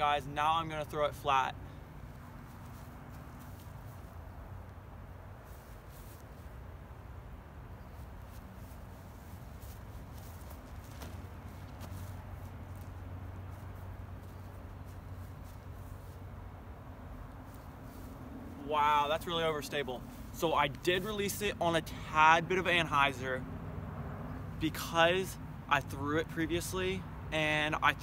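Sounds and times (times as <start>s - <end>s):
steady low hum with hiss: 0.0s - 28.0s
footfalls on grass: 2.0s - 4.3s, 7.9s - 16.4s.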